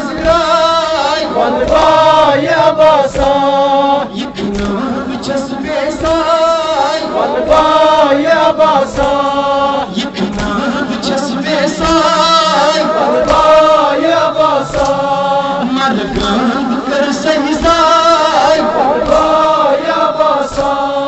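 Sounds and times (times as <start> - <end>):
men chanting through loudspeaker: 0.0 - 21.0.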